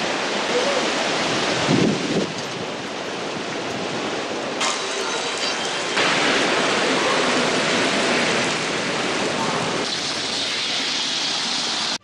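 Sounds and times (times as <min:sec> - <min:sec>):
heavy rain hissing on road: 0:00.0 - 0:12.0.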